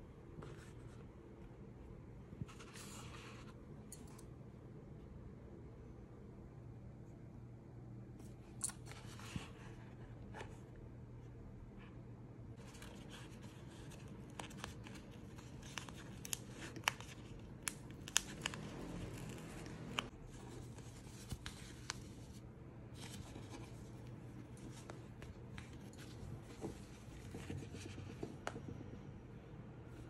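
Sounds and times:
paper envelope rustling: 12.6s - 22.4s.

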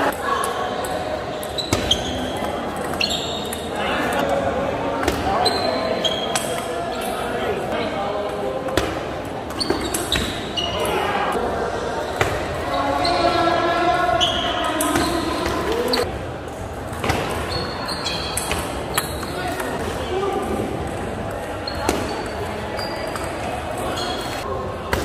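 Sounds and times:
people talking: 0.0s - 25.0s.

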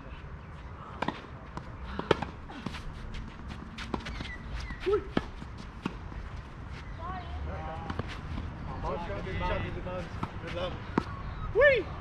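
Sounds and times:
footsteps on court: 1.0s - 7.0s.

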